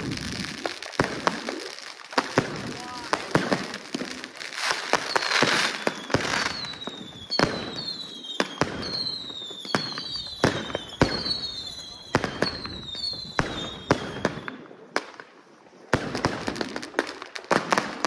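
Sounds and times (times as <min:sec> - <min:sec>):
fireworks bangs with whistles: 0:00.0 - 0:18.0
fireworks crackling bangs: 0:00.0 - 0:18.0.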